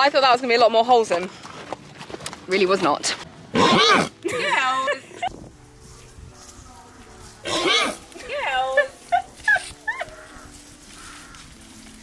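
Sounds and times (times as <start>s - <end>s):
people laughing: 4.2s - 5.4s, 8.5s - 10.2s.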